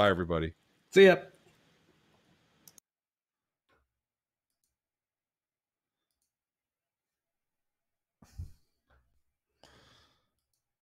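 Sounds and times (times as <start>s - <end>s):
small clicks: 2.6s - 2.8s.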